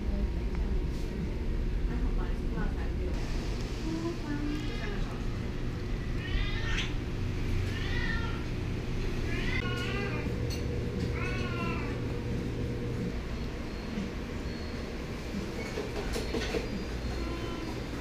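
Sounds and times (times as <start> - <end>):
cat meowing: 6.2 - 7.0, 7.6 - 8.5, 9.3 - 10.3, 11.1 - 12.0.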